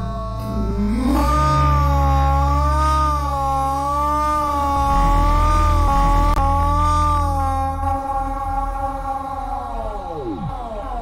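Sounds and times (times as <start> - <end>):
deep bass: 0.0 - 11.0
wavering high electronic tone: 0.0 - 11.0.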